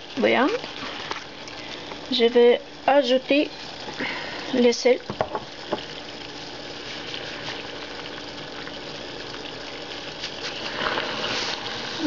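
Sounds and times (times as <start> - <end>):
water boiling in a pot: 0.0 - 12.0.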